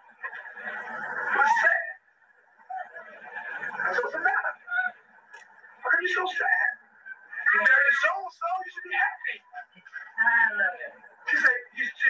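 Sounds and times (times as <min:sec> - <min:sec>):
man speaking muffled recording: 0:05.8 - 0:06.8, 0:07.4 - 0:12.0.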